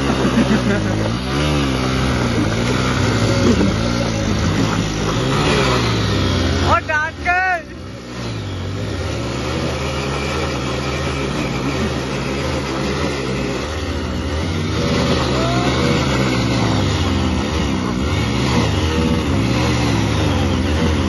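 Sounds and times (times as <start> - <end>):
motorcycle engines revving high: 0.0 - 21.0
person shouting: 6.8 - 7.7, 15.2 - 16.2.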